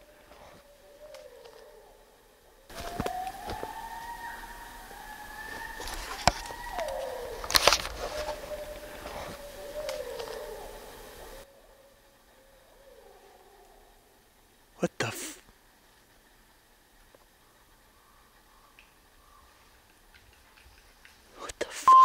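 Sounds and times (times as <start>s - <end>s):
howling calls: 0.0s - 14.9s, 15.6s - 21.3s.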